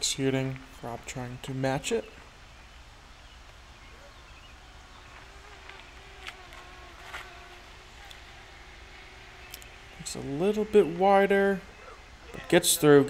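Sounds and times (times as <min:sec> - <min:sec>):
faint wavering buzzing hum: 0:00.0 - 0:13.0.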